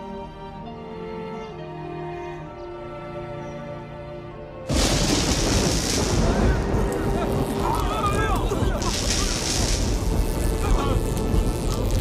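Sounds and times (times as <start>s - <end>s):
soft music: 0.0s - 5.0s
heavy rain downpour: 4.7s - 12.0s
thunder crash: 4.7s - 12.0s.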